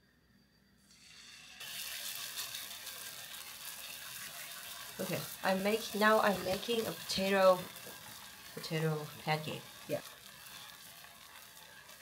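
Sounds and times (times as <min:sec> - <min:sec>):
batter sizzling in a pan: 0:00.4 - 0:12.0.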